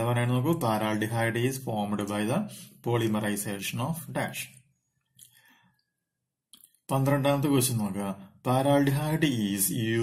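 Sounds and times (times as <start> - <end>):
man talking: 0.0 - 4.6, 6.9 - 10.0.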